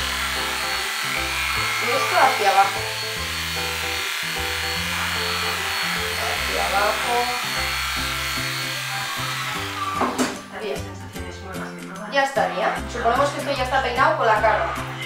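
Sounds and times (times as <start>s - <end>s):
electric animal clipper running: 0.0s - 10.4s
background music: 0.0s - 15.0s.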